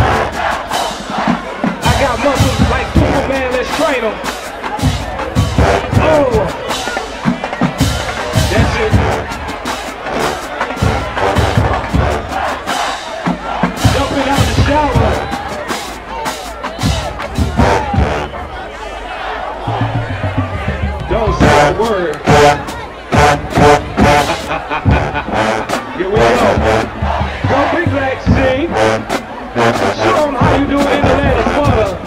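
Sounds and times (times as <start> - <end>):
crowd noise: 0.0 - 32.0
drumline strokes: 0.0 - 32.0
marching band brass: 0.0 - 32.0.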